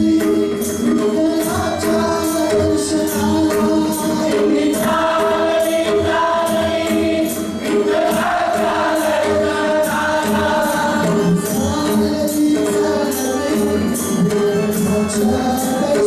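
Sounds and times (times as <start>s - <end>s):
congregation singing: 0.0s - 16.0s
jingling percussion strikes: 0.0s - 16.0s.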